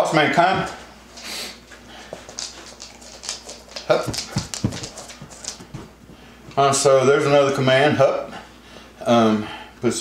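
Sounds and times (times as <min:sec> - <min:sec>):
dog scuffing on couch: 0:02.2 - 0:06.3.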